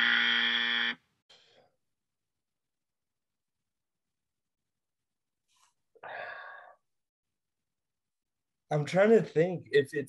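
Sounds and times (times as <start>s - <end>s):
wrong-answer buzzer: 0.0s - 1.0s.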